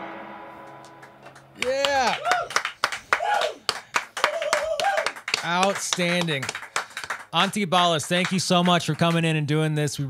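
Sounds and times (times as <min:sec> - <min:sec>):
people clapping: 0:00.9 - 0:09.5
people whooping: 0:01.6 - 0:05.7.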